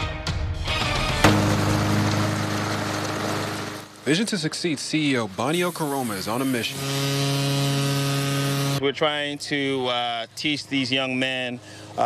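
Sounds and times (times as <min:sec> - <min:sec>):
lawn mower engine running: 0:01.2 - 0:04.6, 0:05.3 - 0:08.8.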